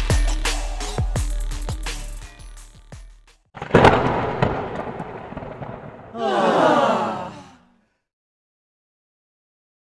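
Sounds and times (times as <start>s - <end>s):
sudden loud burst: 3.6s - 7.3s.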